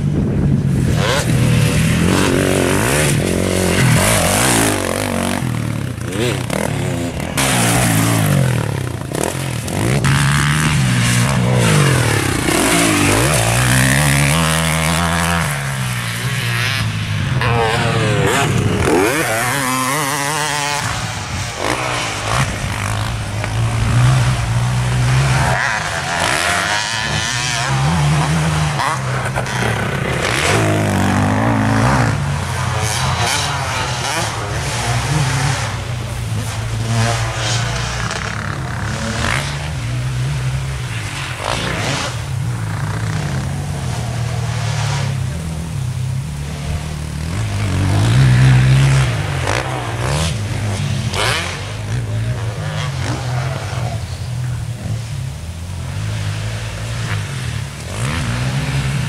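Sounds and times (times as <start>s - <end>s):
motocross bike engine revving: 0.0s - 59.0s.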